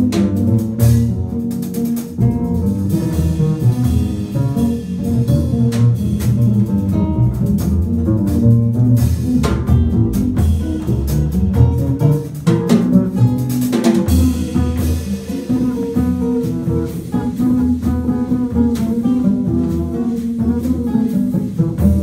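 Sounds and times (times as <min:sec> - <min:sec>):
acoustic guitar: 0:00.0 - 0:22.0
double bass: 0:00.0 - 0:22.0
drum kit: 0:00.0 - 0:22.0.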